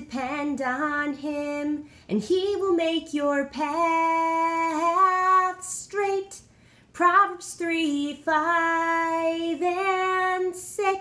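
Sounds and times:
person singing unaccompanied: 0.0s - 6.4s, 7.0s - 11.0s.

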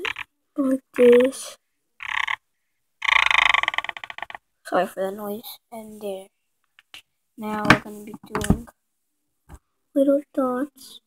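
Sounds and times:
marker squeaking on whiteboard: 0.0s - 0.3s, 1.0s - 4.4s.

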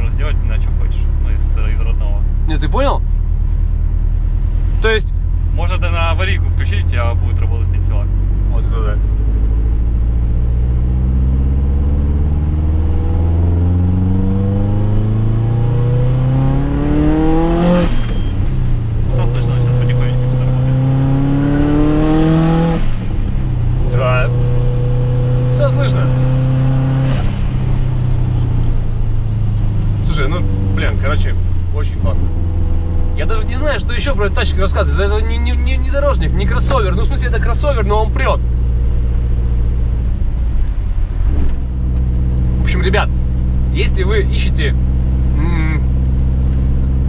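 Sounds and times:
car engine accelerating: 0.0s - 47.0s.

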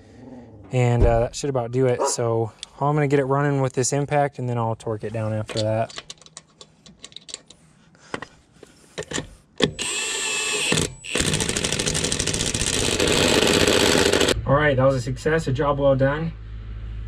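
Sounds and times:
impact wrench motor whine: 9.7s - 14.4s
impact wrench rapid hammering: 10.8s - 14.4s.

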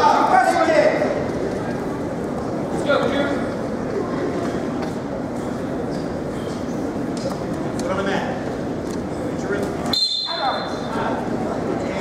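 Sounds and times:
low rumble of gymnasium room: 0.0s - 12.0s.

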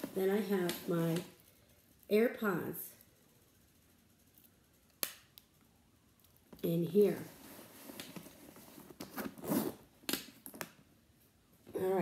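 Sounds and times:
handbag rustling: 7.2s - 9.9s.

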